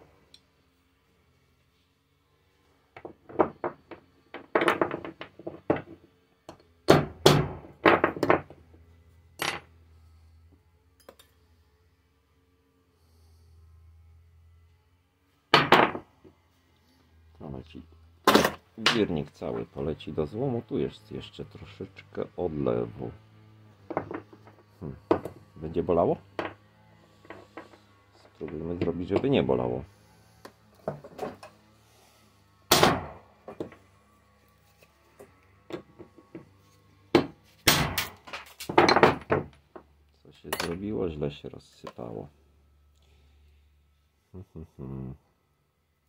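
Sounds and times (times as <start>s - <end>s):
metal parts knocking on workbench: 3.0s - 6.0s, 7.3s - 8.6s, 9.4s - 9.7s, 23.9s - 25.4s, 30.8s - 31.5s, 38.0s - 39.6s.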